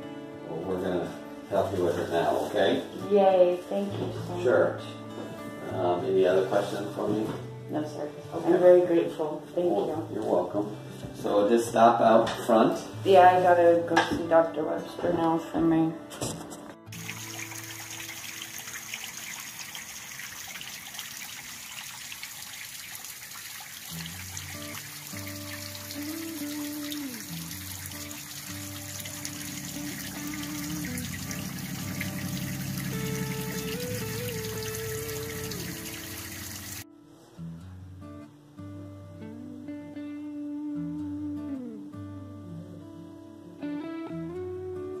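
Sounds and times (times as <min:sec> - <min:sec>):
slow background music: 0:00.0 - 0:19.4, 0:23.9 - 0:45.0
water trickling: 0:16.9 - 0:36.8.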